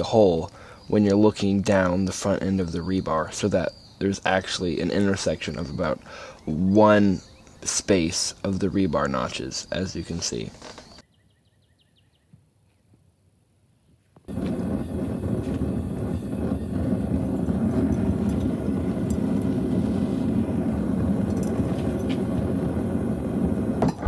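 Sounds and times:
forge burner rushing: 0:14.3 - 0:24.0.

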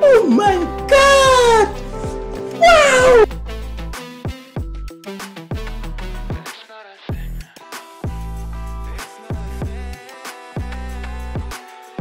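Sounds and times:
music with steady bass: 0:00.0 - 0:12.0
meow-like wailing cry: 0:02.6 - 0:03.3.

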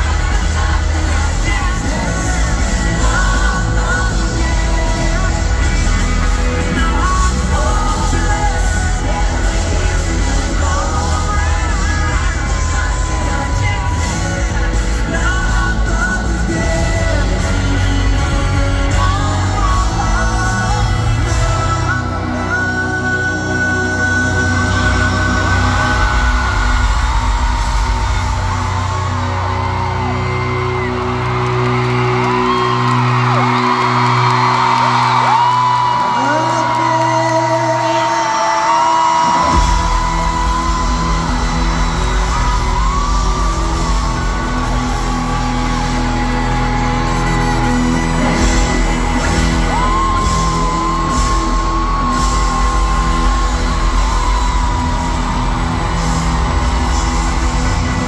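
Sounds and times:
crowd whooping and yelling: 0:00.0 - 0:58.0
live pop-rock band: 0:00.0 - 0:58.0.

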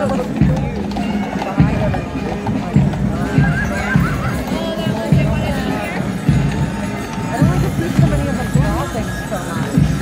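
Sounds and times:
band music with a beat: 0:00.0 - 0:10.0
crowd voices: 0:00.0 - 0:10.0
hooves clip-clopping on pavement: 0:00.0 - 0:10.0.

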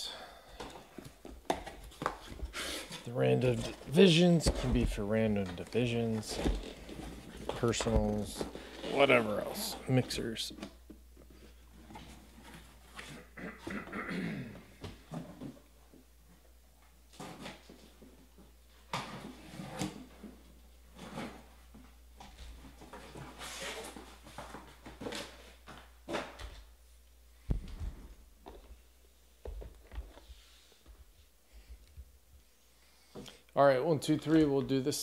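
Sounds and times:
rustling of cardboard boxes: 0:00.6 - 0:13.4, 0:17.0 - 0:26.6.

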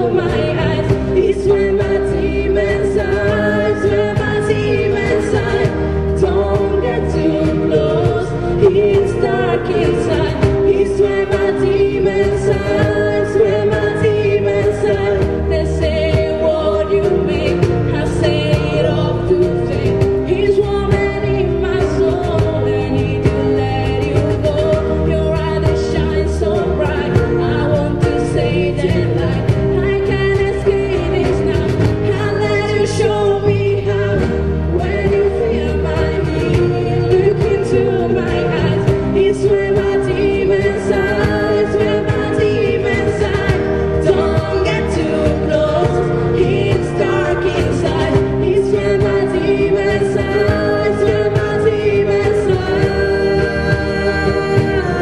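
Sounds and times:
cajon beating time: 0:00.0 - 0:55.0
electric bass: 0:00.0 - 0:55.0
person singing: 0:00.0 - 0:55.0.

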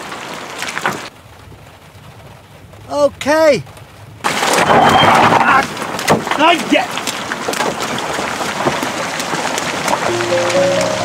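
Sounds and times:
tyres crunching on wet gravel: 0:04.3 - 0:11.0.

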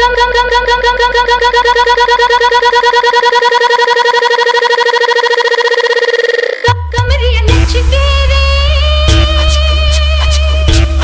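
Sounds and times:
stuttering synth note: 0:00.0 - 0:06.9, 0:07.5 - 0:09.8
low bass hum: 0:06.9 - 0:11.0.

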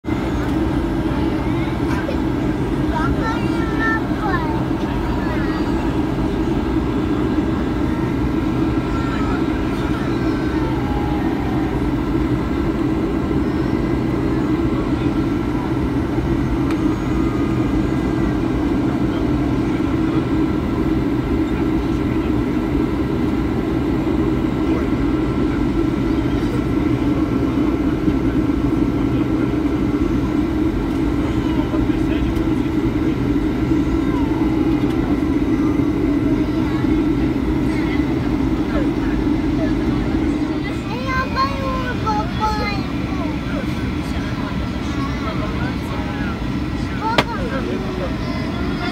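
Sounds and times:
vehicle engine drone: 0:00.0 - 0:48.9.

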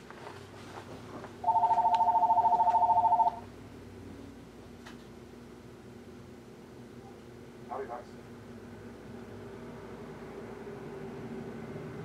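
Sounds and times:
telephone ringing: 0:01.4 - 0:03.5.

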